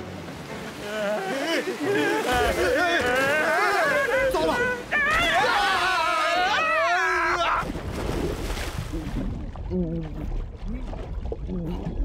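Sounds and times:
cartoon characters screaming: 3.5s - 7.6s.

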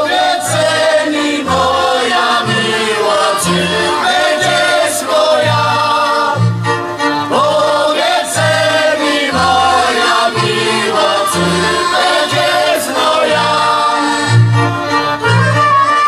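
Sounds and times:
folk band playing: 0.0s - 16.0s
group of voices singing: 0.0s - 16.0s.

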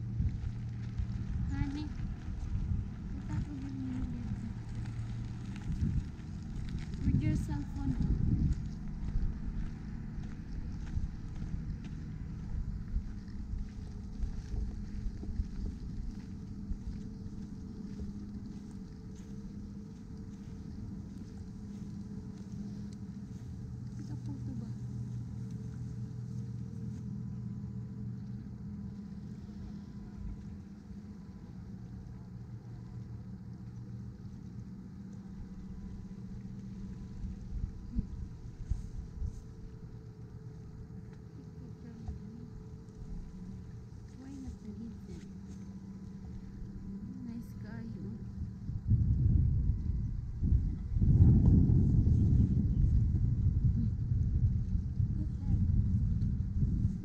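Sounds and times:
van engine idling: 0.0s - 48.8s.

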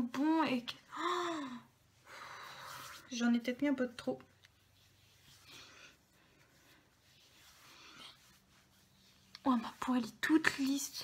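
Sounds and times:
faint soft breaths: 0.8s - 3.4s, 4.2s - 11.0s.

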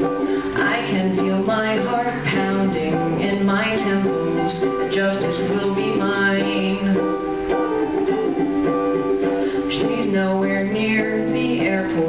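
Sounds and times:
ukulele strumming: 0.0s - 12.0s.

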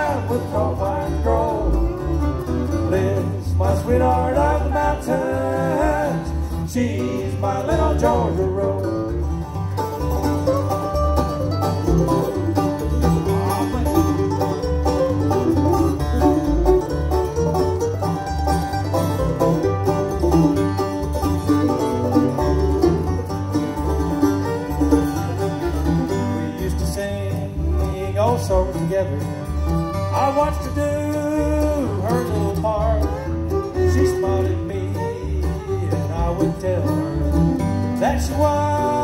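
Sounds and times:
acoustic guitar: 0.0s - 39.0s
banjo: 0.0s - 39.0s
fiddle melody: 0.0s - 39.0s
mandolin: 0.0s - 39.0s
plucked upright bass: 0.0s - 39.0s.

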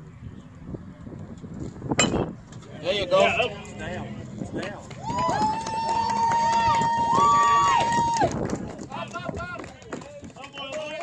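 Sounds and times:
spectators yelling and cheering: 4.8s - 8.5s
long high held yell: 5.0s - 8.4s.

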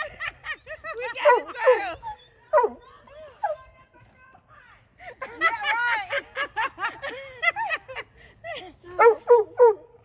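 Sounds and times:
women laughing: 0.0s - 3.7s, 4.9s - 9.3s.

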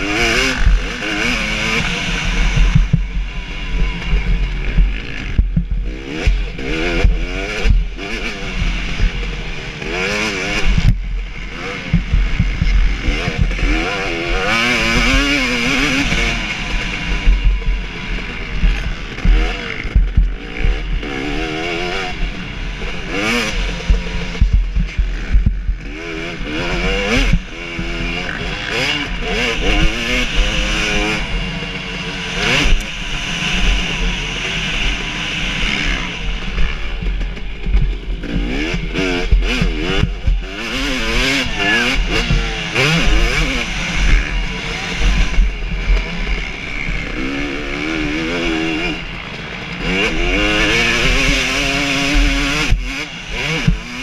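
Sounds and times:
motocross engine revving: 0.0s - 54.0s.

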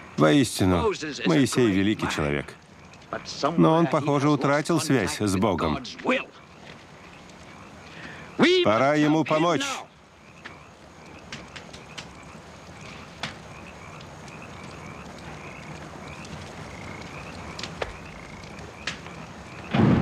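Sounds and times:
night ambience: 0.0s - 20.0s.

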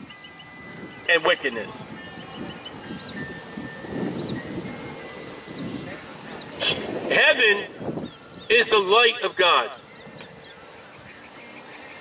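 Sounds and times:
small birds chirping: 0.0s - 6.8s, 7.7s - 12.0s.

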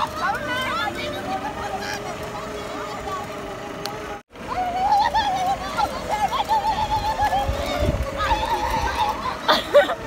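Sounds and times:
steady hum: 0.0s - 10.0s.

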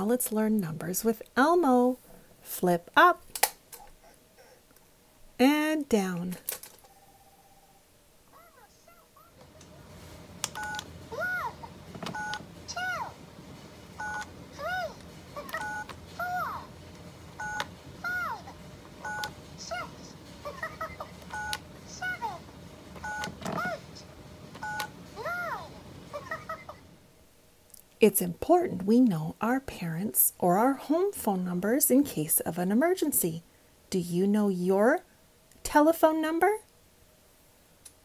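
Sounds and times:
high-pitched recorded character voice: 11.1s - 11.7s
toy phone two-tone dial beep: 15.6s - 15.9s.

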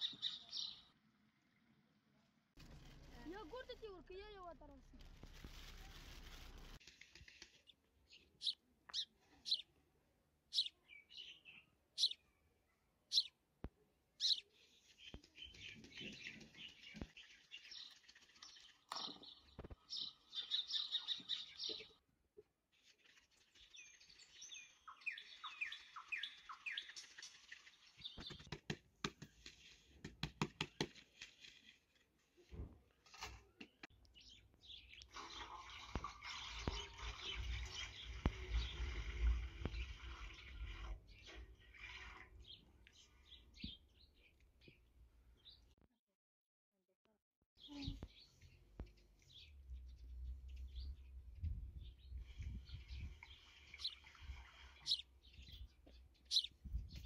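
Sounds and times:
small birds chirping: 0.0s - 1.5s, 2.7s - 31.7s, 33.5s - 45.8s, 47.6s - 57.0s.

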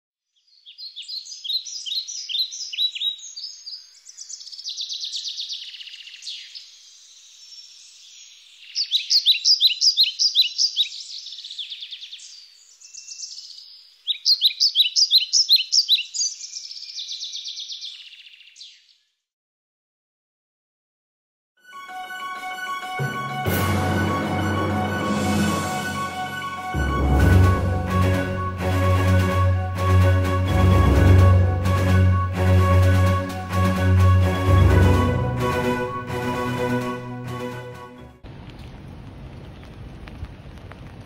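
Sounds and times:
songbird chirping and trilling: 0.3s - 19.2s.

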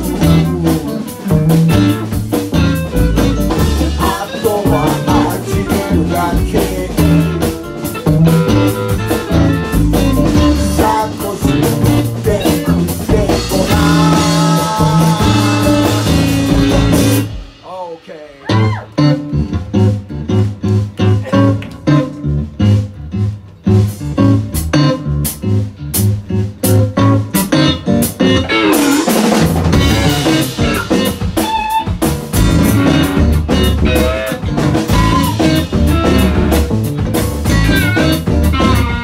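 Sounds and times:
electric guitar: 0.0s - 17.6s, 18.4s - 39.0s
bass: 0.0s - 39.0s
drum kit: 0.0s - 39.0s.

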